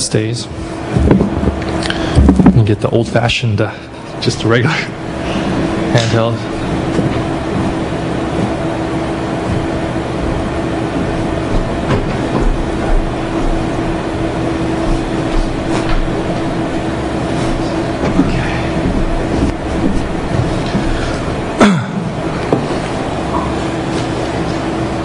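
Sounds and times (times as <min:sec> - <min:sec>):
constant low hum: 0:00.0 - 0:25.0
rumbling room noise: 0:00.0 - 0:25.0.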